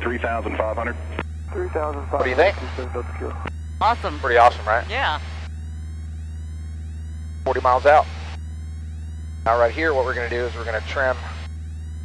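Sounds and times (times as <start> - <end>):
aircraft engine droning: 0.0 - 12.0.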